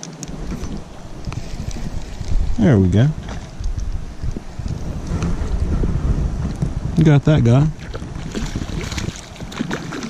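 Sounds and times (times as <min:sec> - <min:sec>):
microphone handling noise: 0:00.0 - 0:10.0
wind rumbling on microphone: 0:00.0 - 0:10.0.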